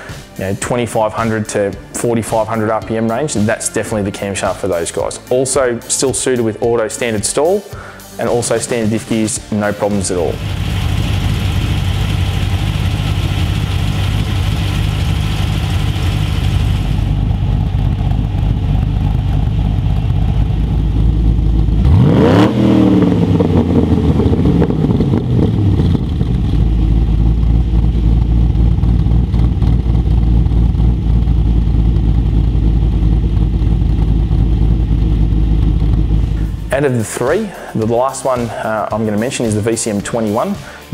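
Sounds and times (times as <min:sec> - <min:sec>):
engine revving: 0:09.7 - 0:37.8
car engine idling with a lope: 0:10.3 - 0:36.8.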